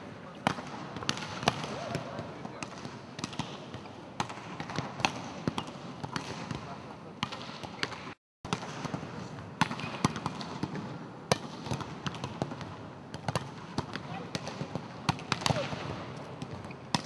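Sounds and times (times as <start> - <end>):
volleyballs smacking: 0.4 - 17.0.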